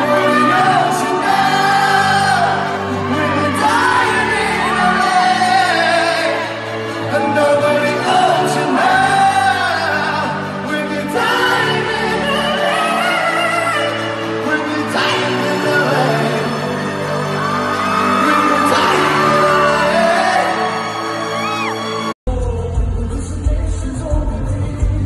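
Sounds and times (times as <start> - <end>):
man singing live: 0.0 - 21.7, 22.3 - 25.0.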